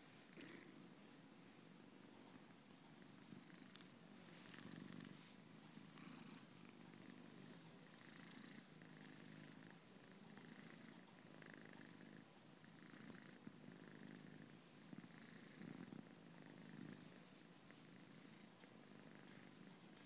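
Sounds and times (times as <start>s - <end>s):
cat purring: 0.0s - 20.0s.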